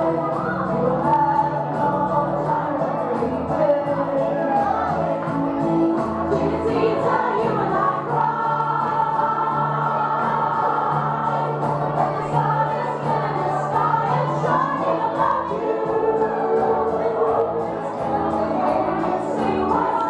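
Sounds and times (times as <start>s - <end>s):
loud music with singing: 0.0s - 20.0s.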